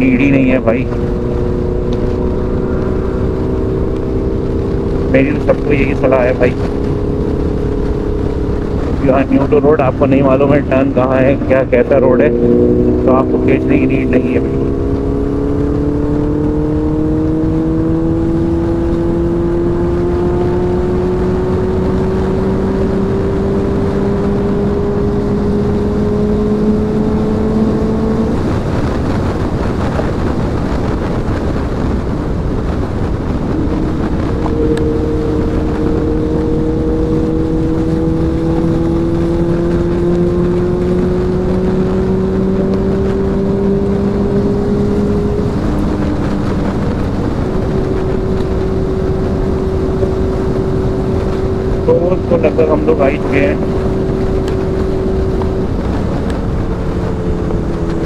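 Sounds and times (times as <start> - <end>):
motorcycle engine at speed: 0.0 - 58.0
wind rush on microphone: 0.0 - 58.0.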